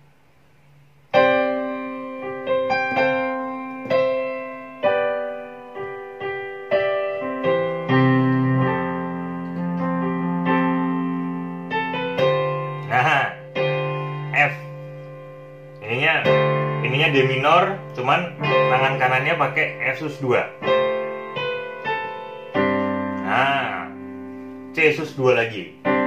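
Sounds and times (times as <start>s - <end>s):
keyboard piano chords: 0.0s - 26.0s.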